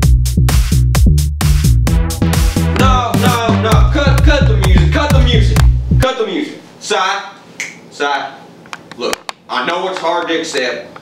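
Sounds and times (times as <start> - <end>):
dance music: 0.0 - 6.1.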